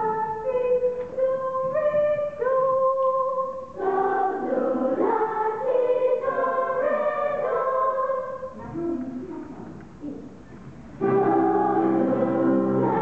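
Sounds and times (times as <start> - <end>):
voices singing in harmony: 0.0 - 8.6, 11.0 - 13.0.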